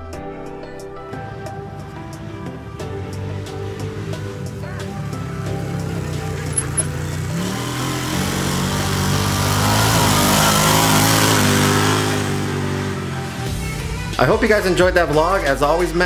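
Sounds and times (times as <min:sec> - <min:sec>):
background music: 0:00.0 - 0:16.0
off-road vehicle driving: 0:01.2 - 0:14.3.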